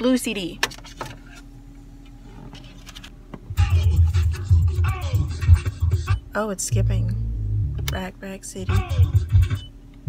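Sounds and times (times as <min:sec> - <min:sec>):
skipping dance music with heavy bass: 0:03.6 - 0:06.2, 0:08.6 - 0:09.6.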